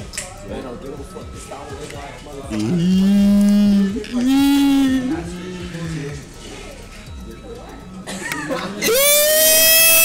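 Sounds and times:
cow mooing: 2.6s - 5.6s.

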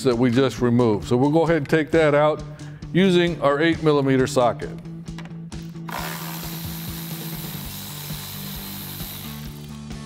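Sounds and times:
electric ratchet whirring: 5.9s - 9.9s.

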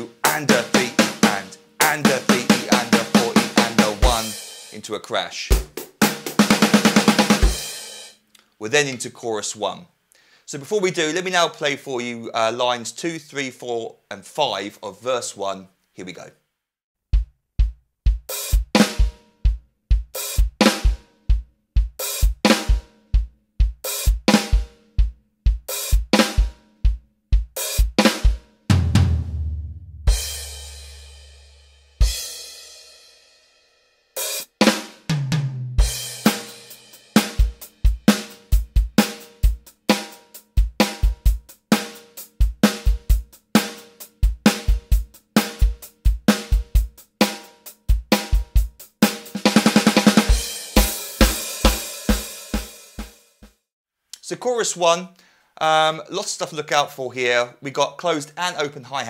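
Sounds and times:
electronic drum kit rock beat: 0.0s - 4.8s, 5.5s - 8.1s, 17.1s - 31.2s, 34.2s - 53.5s
fast drum roll: 0.0s - 4.9s, 5.5s - 8.1s, 17.1s - 31.3s, 34.2s - 53.6s.

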